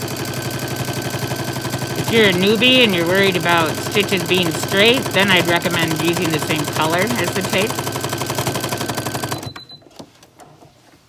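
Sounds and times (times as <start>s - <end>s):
sewing machine stitching: 0.0s - 9.8s.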